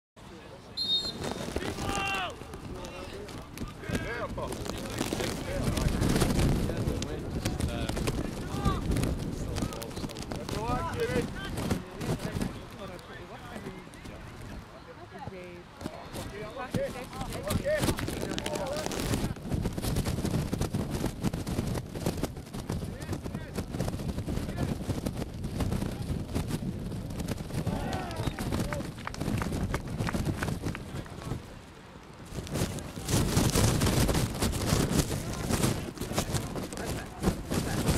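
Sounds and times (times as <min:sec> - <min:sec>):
open-air field noise: 0:00.2 - 0:37.9
voices shouting and calling: 0:00.8 - 0:03.2
wind rumble on microphone: 0:01.0 - 0:14.7, 0:15.3 - 0:31.6, 0:32.2 - 0:37.9
players shouting: 0:01.5 - 0:03.2, 0:27.6 - 0:28.8.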